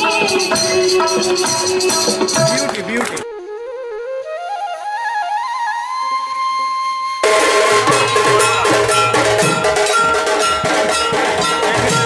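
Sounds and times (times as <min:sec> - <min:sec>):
steady percussion beat: 0:00.0 - 0:03.0, 0:07.2 - 0:12.0
held melody notes: 0:00.0 - 0:12.0.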